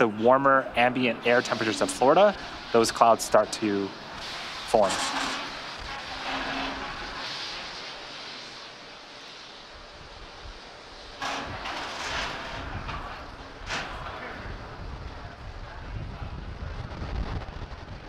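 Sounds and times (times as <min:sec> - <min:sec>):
steady rushing noise: 0:00.0 - 0:18.0.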